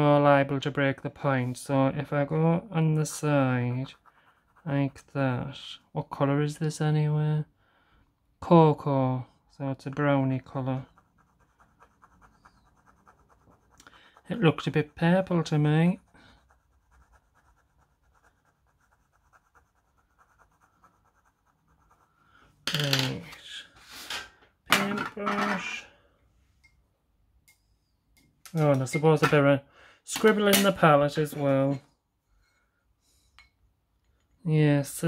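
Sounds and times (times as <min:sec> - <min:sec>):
pencil scratching: 0:03.0 - 0:05.1, 0:10.4 - 0:22.5.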